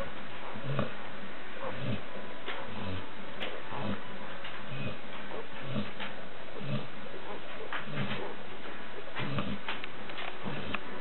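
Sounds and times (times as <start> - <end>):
puppies grunting: 0.0 - 11.0.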